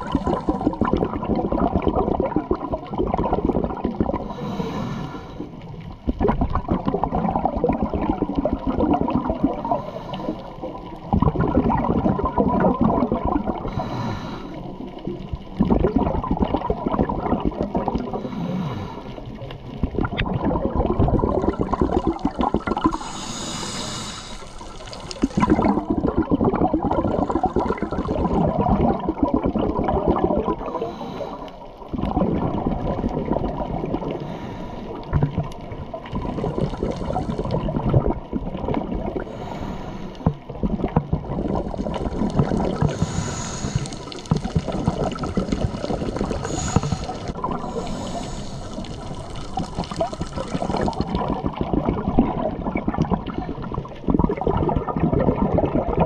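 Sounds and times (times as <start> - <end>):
exhaled air bubbling underwater: 0.0 - 56.0
regulator hissing inhalations: 4.2 - 5.6, 22.9 - 25.4, 42.7 - 44.4, 46.3 - 49.6.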